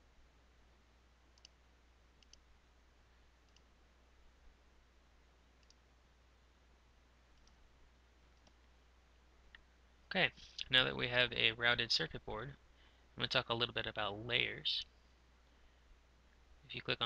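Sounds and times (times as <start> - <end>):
low steady hum: 0.0 - 17.0
computer mouse clicks: 1.4 - 1.6, 2.2 - 2.4, 3.5 - 3.7, 5.6 - 5.8, 7.4 - 7.6, 8.4 - 8.7.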